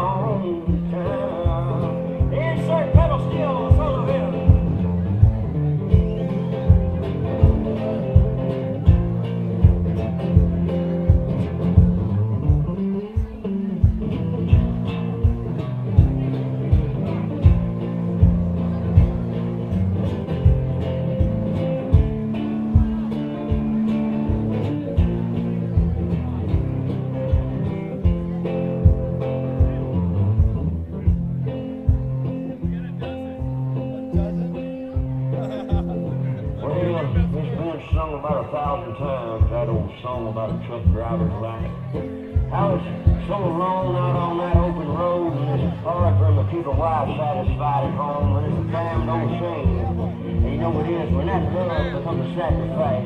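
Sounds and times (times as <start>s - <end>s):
blues guitar playing: 0.0s - 53.0s
steady low thump: 3.0s - 38.8s, 40.8s - 43.5s.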